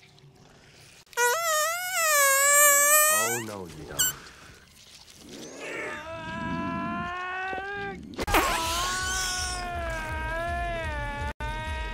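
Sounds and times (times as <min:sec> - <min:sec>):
high squeaky fart: 0:01.1 - 0:04.2, 0:08.3 - 0:09.4.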